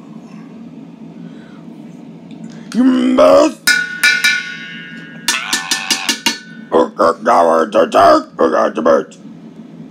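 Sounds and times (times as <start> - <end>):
metal bowl taps ringing: 3.7 - 6.8.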